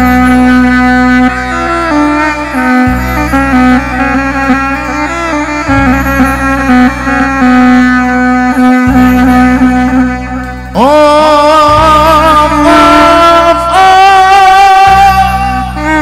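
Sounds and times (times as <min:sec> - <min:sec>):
held drone: 0:00.0 - 0:16.0
ornamented lead melody: 0:00.0 - 0:16.0
steady bass line: 0:00.0 - 0:16.0.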